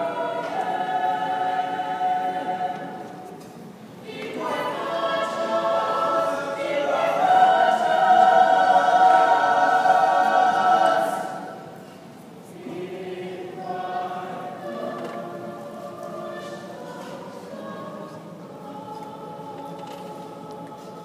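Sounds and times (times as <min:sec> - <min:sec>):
mixed choir singing: 0:00.0 - 0:21.0.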